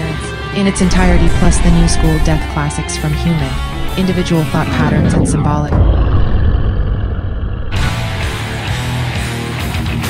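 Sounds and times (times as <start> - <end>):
heavy metal music with electric guitar: 0.0 - 10.0
deep rumble: 0.6 - 9.1.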